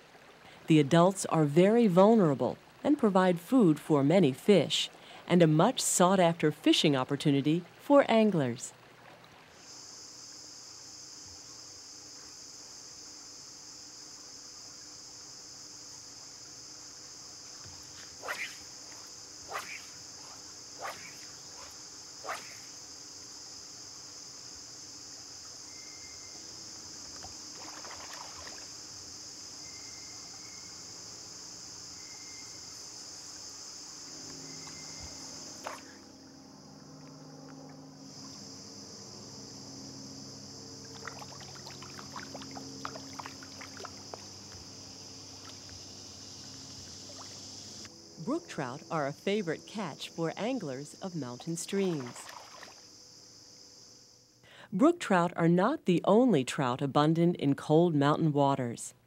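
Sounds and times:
high-pitched insect chorus: 9.5 - 54.6.

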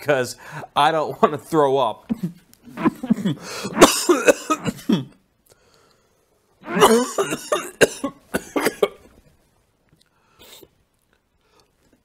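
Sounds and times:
man coughing: 2.1 - 5.2, 6.6 - 9.1.

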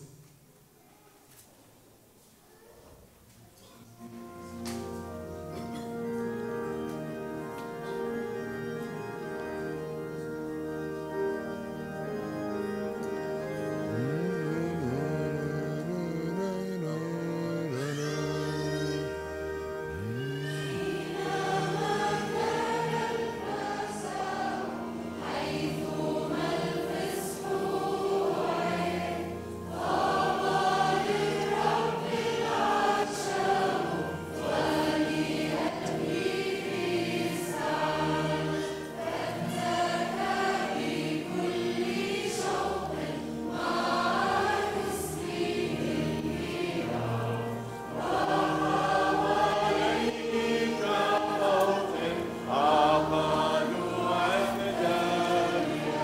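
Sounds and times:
choir singing a hymn: 4.0 - 56.0
held low notes: 13.4 - 36.6.

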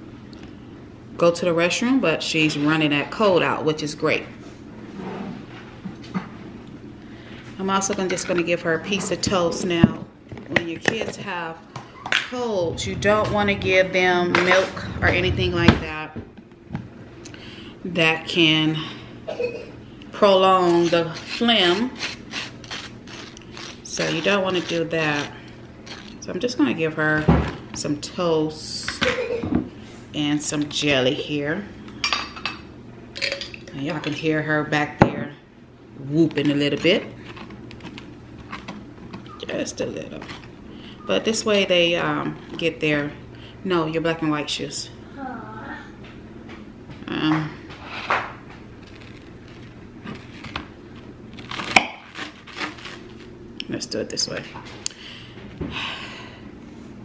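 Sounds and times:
knife scraping butter on toast: 20.5 - 26.2.

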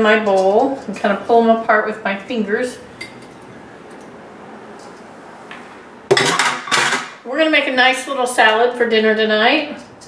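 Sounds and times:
glass jar and bowl clattering: 6.1 - 7.1.

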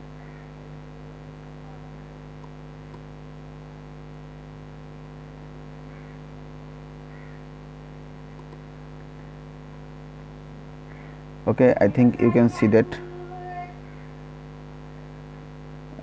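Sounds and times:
electrical mains hum: 0.0 - 16.0
faint ticks: 8.3 - 8.6.

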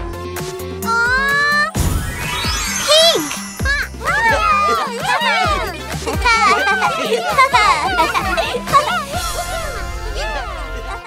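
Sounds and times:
children's background music: 0.0 - 11.0
cartoon voices cheering and squealing: 0.9 - 1.7, 2.7 - 11.0.

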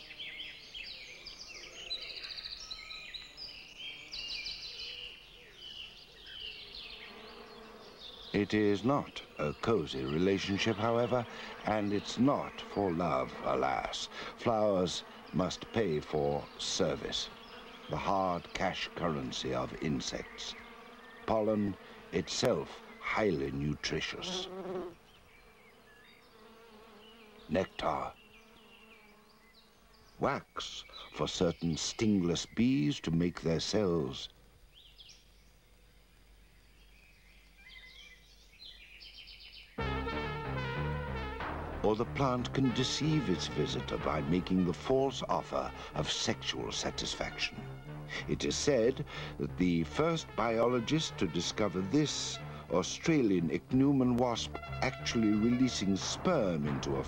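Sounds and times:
faint low insect buzz: 0.0 - 57.0
high chirps and trills: 39.8 - 53.2.

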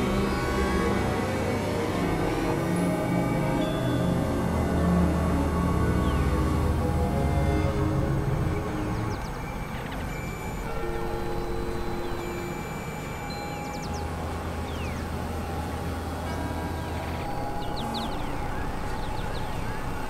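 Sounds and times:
low drone: 0.0 - 20.0
synthesizer noise hiss: 0.0 - 20.0
held synthesizer tones: 8.5 - 20.0.

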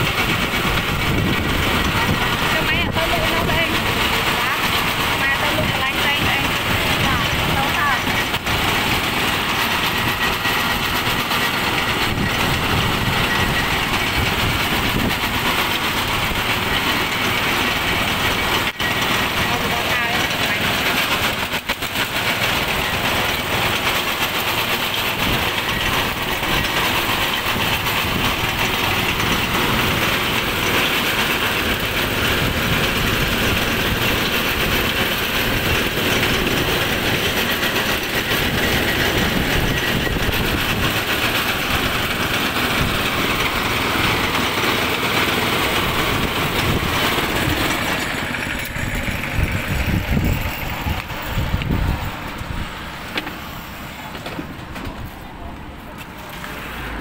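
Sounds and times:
juice press rollers: 0.0 - 55.1
small engine running under load: 0.0 - 57.0.

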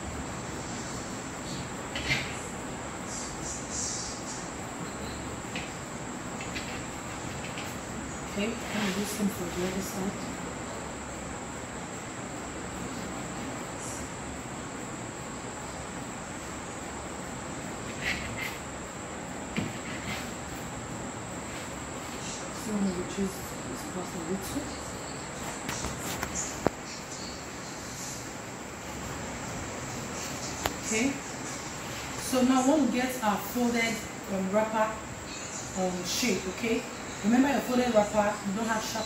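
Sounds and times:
constant hiss: 0.0 - 39.0.

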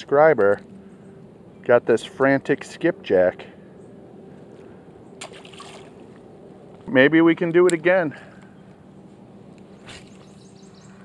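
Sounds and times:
fish splashing into water: 5.2 - 6.1.

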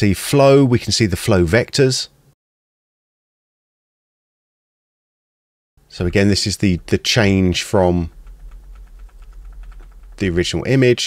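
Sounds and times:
computer keys clicking: 8.0 - 10.6.

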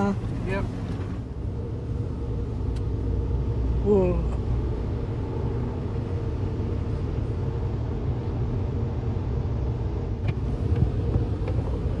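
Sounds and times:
car wash rumble: 0.0 - 12.0.

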